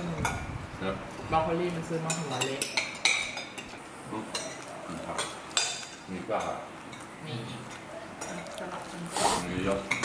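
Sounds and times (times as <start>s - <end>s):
cutlery clinking on plates: 2.0s - 7.1s, 9.7s - 10.0s.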